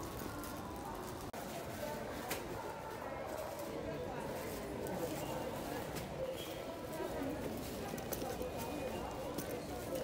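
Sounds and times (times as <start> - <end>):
background chatter of shoppers: 0.0 - 10.0.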